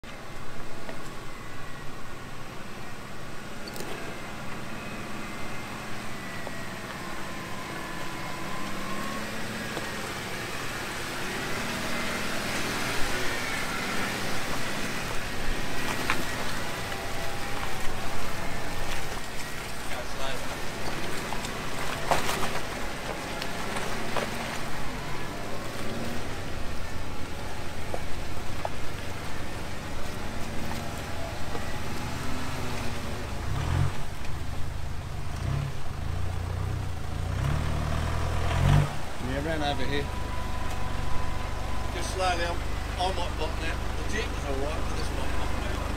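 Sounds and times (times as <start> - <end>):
vehicle engines running low: 0.0 - 45.9.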